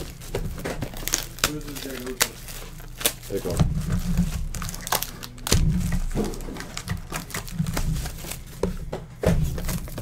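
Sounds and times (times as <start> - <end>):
cardboard boxes knocking on table: 6.0 - 10.0.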